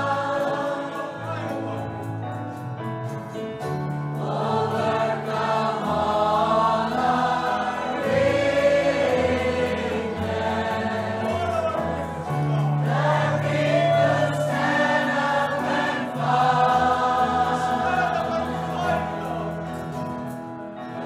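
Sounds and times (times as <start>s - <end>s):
choir singing: 0.0s - 2.1s, 3.9s - 21.0s
instrumental accompaniment: 0.0s - 21.0s.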